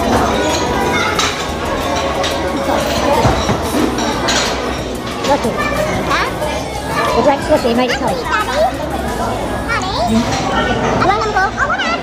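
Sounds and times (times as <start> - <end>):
cutlery clinking on plate: 0.0 - 5.8
overlapping voices talking: 0.0 - 12.0.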